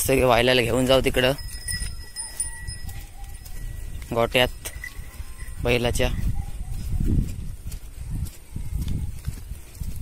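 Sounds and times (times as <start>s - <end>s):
footfalls on wet soil and straw: 0.9s - 10.0s.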